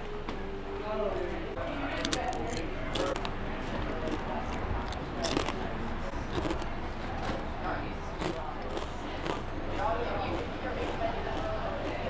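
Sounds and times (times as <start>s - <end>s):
murmuring background voices: 0.2s - 12.0s
chewing crispy fries: 1.6s - 12.0s.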